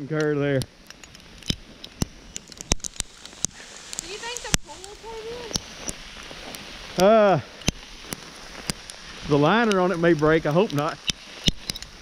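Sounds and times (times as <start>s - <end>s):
sleet pellets ticking: 0.1s - 12.0s.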